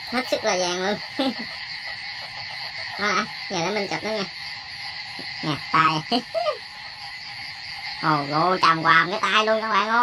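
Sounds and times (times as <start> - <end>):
frogs and insects chorus: 0.0 - 10.0.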